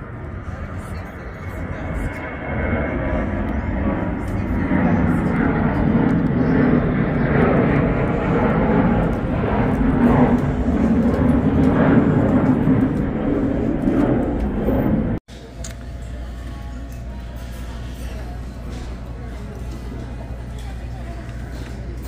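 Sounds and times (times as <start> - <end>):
jet aircraft rumble: 0.0 - 22.0.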